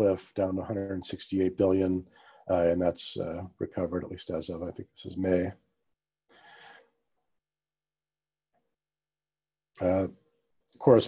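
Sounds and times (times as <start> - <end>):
faint breath: 2.0 - 2.5, 6.3 - 7.0.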